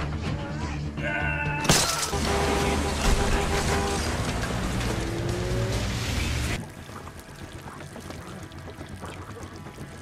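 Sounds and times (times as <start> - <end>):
car engine: 2.0 - 6.6.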